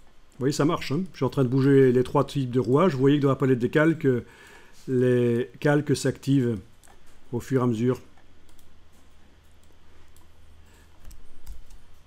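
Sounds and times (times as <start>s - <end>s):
low steady hum: 0.0s - 12.0s
computer mouse clicks: 8.1s - 12.0s.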